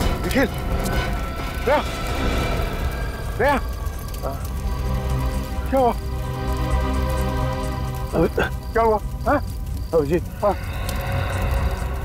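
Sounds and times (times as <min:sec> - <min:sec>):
low background music drone: 0:00.0 - 0:12.0.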